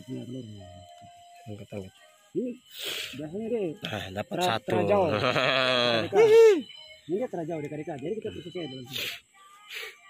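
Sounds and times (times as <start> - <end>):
man shouting: 4.7 - 6.6.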